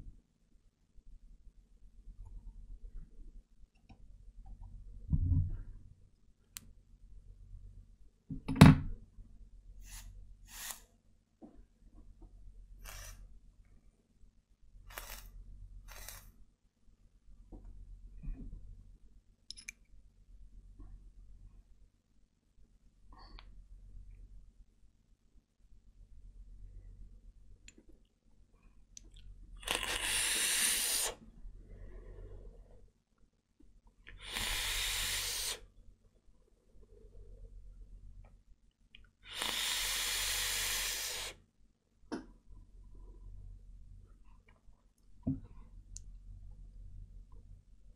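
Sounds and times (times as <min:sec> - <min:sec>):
breathy vaping hisses: 0:09.8 - 0:10.9, 0:12.8 - 0:13.2, 0:14.9 - 0:15.3, 0:15.9 - 0:16.3, 0:29.6 - 0:31.2, 0:34.1 - 0:35.7, 0:39.2 - 0:41.4.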